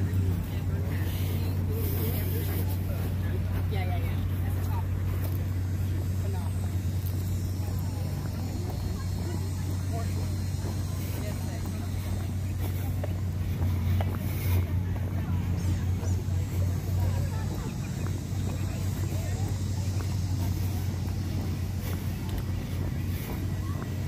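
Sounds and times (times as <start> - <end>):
faint distant voices: 0.0 - 24.0
wind rumbling on microphone: 0.0 - 24.0.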